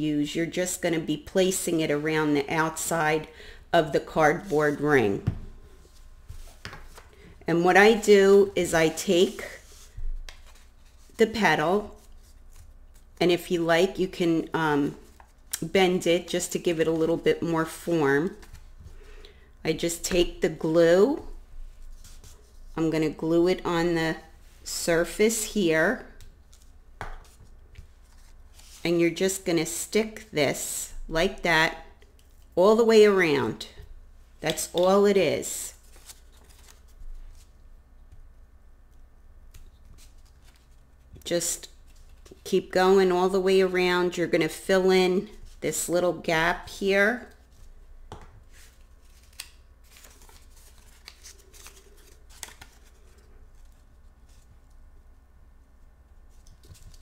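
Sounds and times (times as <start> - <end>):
paper rustling: 8.8 - 11.2, 35.7 - 37.6, 48.5 - 54.8.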